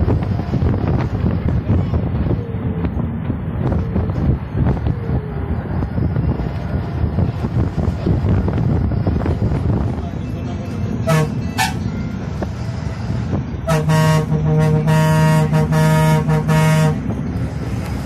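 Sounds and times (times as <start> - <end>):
bus diesel engine: 0.0 - 18.0
road rumble: 0.0 - 18.0
vehicle horn honking: 11.0 - 11.9, 13.6 - 17.1.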